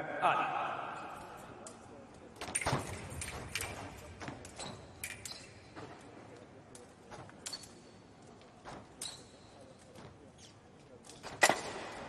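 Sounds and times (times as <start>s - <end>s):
fencers' footwork taps and stamps: 2.4s - 12.0s.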